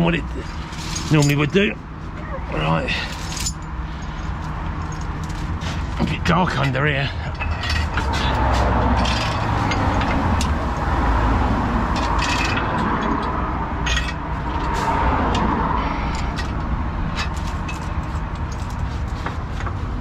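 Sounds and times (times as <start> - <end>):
low engine rumble: 0.0 - 20.0
chain clinking and rattling: 0.3 - 10.9, 11.9 - 19.7.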